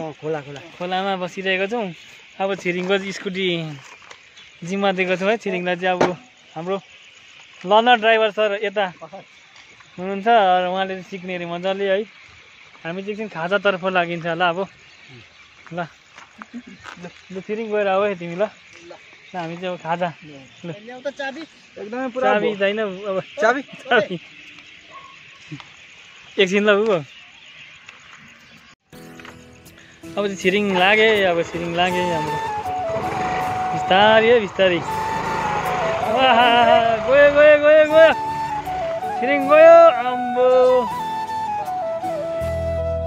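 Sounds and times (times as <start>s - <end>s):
man calling out: 22.2s - 22.6s, 36.0s - 38.2s
sustained music notes: 30.1s - 43.0s
scooter pulling away: 30.5s - 39.2s
louder talk: 36.0s - 38.2s.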